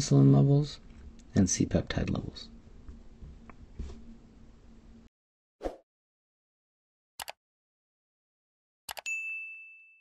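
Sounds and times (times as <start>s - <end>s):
bright bell ding: 9.0s - 10.0s.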